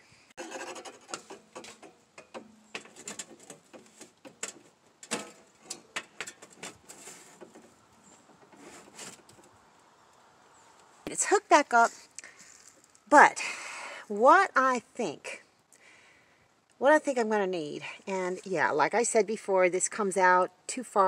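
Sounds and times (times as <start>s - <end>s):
sheet metal pipes scraping and clicking: 0.4s - 9.5s.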